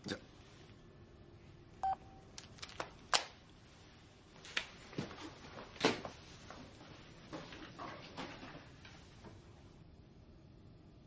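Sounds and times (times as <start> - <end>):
phone key beep: 1.8 - 2.0.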